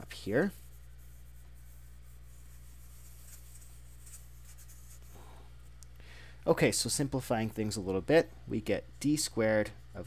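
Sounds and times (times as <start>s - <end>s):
tissue scrubbing a whiteboard: 0.0s - 5.3s
low electrical hum: 0.0s - 10.0s.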